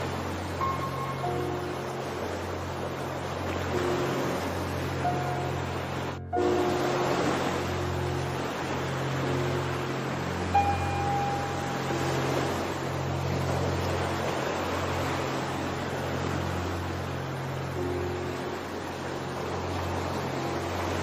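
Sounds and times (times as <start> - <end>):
ocean surf washing: 0.0 - 21.0
soft music of low held notes: 0.0 - 21.0.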